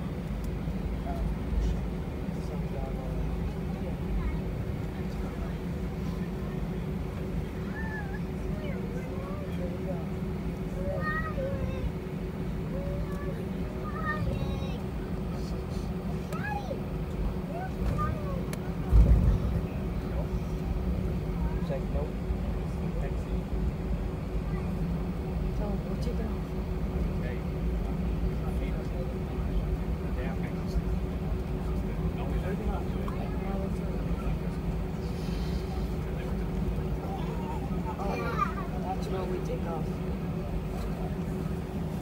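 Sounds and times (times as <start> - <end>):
faint passenger voices: 0.0 - 42.0
low engine rumble: 0.0 - 42.0
steady hum: 0.0 - 42.0.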